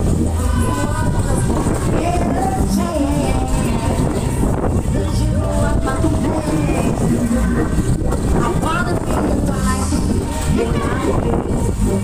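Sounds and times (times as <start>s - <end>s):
fairground ride rumbling: 0.0s - 12.0s
voices calling out: 0.0s - 12.0s.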